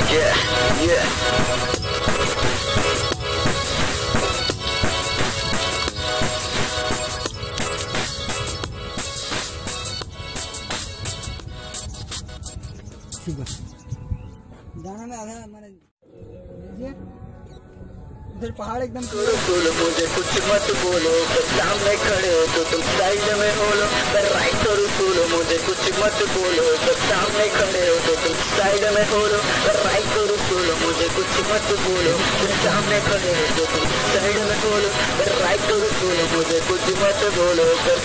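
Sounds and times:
man's sing-song voice: 0.0s - 1.2s, 19.0s - 38.0s
loud steady hiss: 19.0s - 38.0s.

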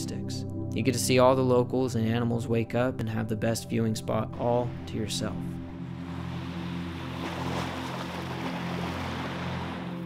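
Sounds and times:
soft background music: 0.0s - 10.0s
sea waves washing on shore: 6.0s - 10.0s.

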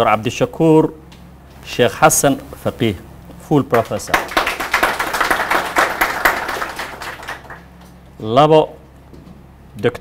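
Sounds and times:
audience applauding: 3.8s - 7.7s.

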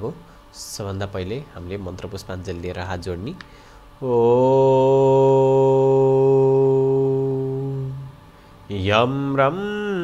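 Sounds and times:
man chanting a held note: 4.0s - 10.0s.

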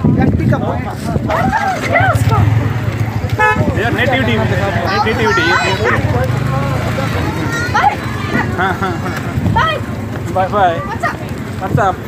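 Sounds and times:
voices talking: 0.0s - 12.0s
vehicle horn toot: 3.3s - 3.8s.

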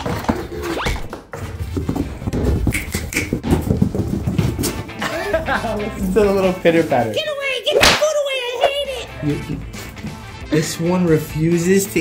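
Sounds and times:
goat hooves pattering on rubber mat: 1.1s - 5.1s.

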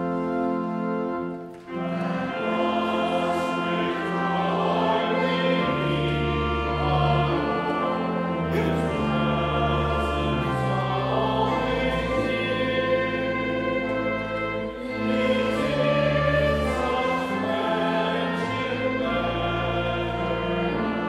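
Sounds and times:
congregation singing a hymn: 0.0s - 21.0s
organ chords: 0.0s - 21.0s.

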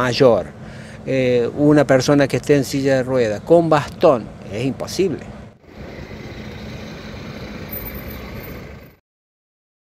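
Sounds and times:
street traffic: 0.0s - 9.0s
vehicle engine running: 4.2s - 9.0s.

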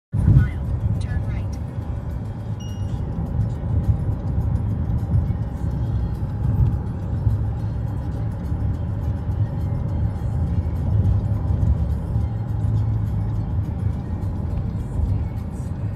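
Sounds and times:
car road and engine noise: 0.1s - 15.9s
music playing: 0.2s - 15.9s.

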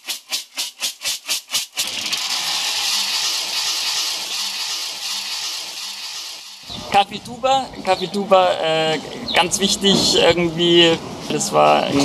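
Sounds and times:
beans pouring into metal drum: 0.0s - 6.7s
coffee beans rattling in metal basin: 0.0s - 6.7s.

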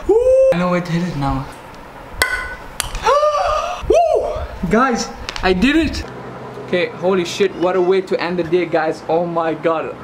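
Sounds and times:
ball hitting frying pan: 2.2s - 2.9s
man's excited cry: 3.0s - 4.5s.

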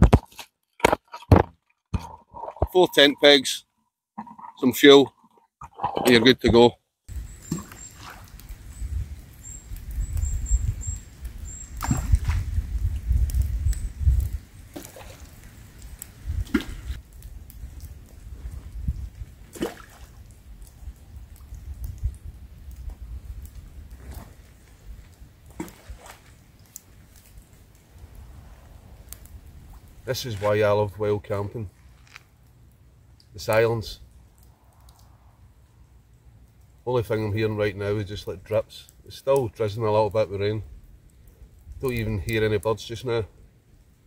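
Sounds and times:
rain drips: 4.2s - 44.0s.

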